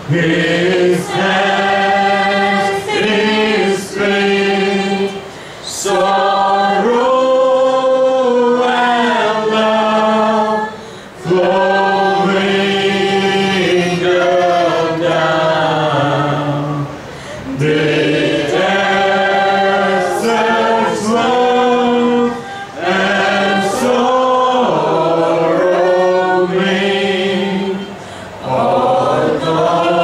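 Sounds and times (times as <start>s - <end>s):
group singing slow worship song: 0.0s - 30.0s.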